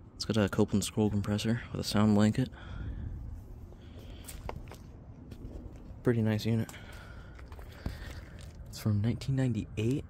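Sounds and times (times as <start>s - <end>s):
footsteps on gravel: 4.0s - 8.8s.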